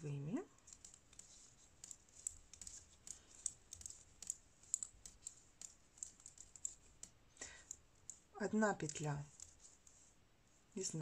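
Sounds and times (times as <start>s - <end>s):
knitting needles clicking: 0.0s - 10.1s.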